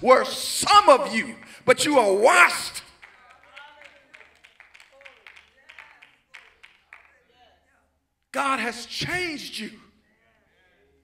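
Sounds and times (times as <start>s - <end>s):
scattered hand claps: 2.8s - 7.2s.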